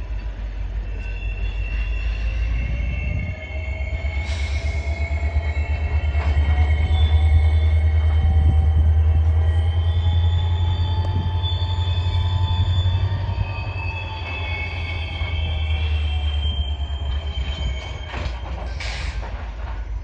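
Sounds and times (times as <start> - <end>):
freight cars rumbling: 0.0 - 20.0
steel wheels squealing: 0.0 - 20.0.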